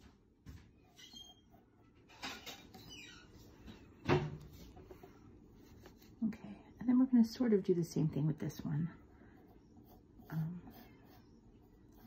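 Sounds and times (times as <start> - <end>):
faint squeaks: 0.8 - 3.5
pencil scratching on paper: 8.5 - 12.0.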